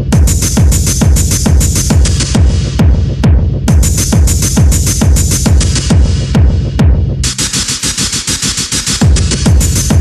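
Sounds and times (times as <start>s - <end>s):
hard techno music: 0.0s - 10.0s.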